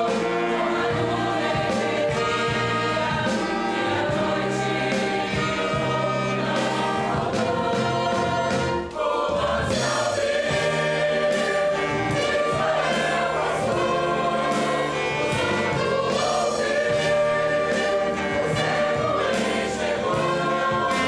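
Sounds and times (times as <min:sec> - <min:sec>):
instrumental ensemble accompanying: 0:00.0 - 0:21.0
many voices singing a hymn: 0:00.0 - 0:21.0.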